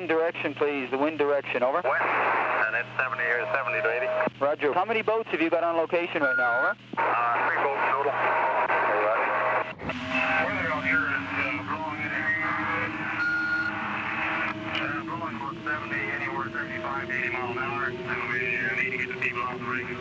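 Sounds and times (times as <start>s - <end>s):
garbled radio voices: 0.1s - 20.0s
radio noise: 0.1s - 20.0s.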